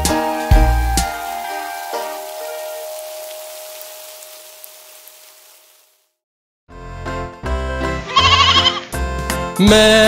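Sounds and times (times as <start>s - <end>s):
rain hissing: 0.0s - 6.2s.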